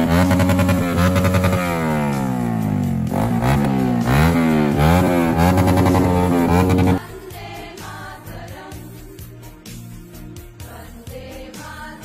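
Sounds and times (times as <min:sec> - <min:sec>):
motorcycle engine revving: 0:00.0 - 0:07.0.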